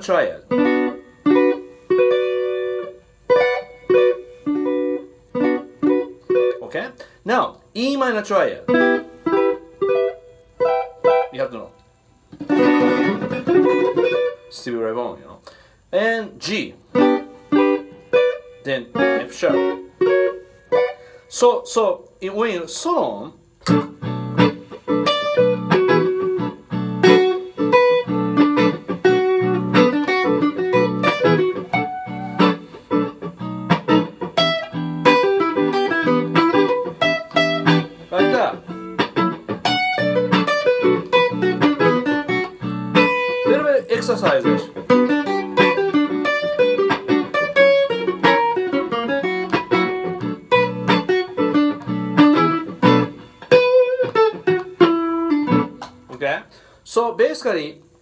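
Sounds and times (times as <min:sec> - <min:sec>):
clean electric guitar solo: 0:00.0 - 0:14.6, 0:16.4 - 0:22.2, 0:23.6 - 0:56.2
looped guitar chord backing: 0:00.0 - 0:56.7.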